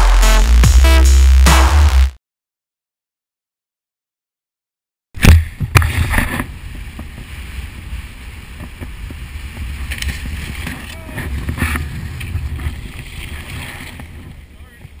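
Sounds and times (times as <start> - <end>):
wind rumbling on microphone: 5.3 - 15.0
skis sliding on snow: 6.0 - 15.0.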